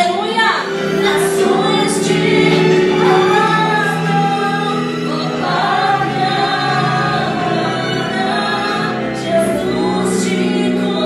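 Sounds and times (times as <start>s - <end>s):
choir singing worship music: 0.2s - 11.0s.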